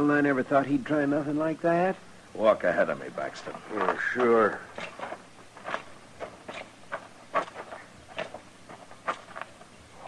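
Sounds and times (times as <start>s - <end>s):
footsteps walking: 3.4s - 10.0s.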